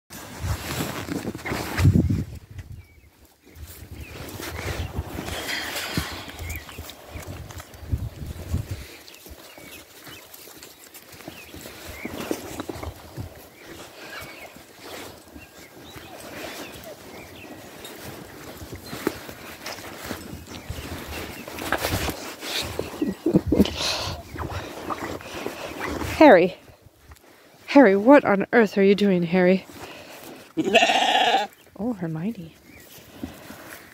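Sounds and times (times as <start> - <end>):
rustling against microphone: 0.1 - 33.9
rubbing on microphone: 0.2 - 2.5, 18.9 - 26.6
sheep low vocal sounds: 30.4 - 31.6.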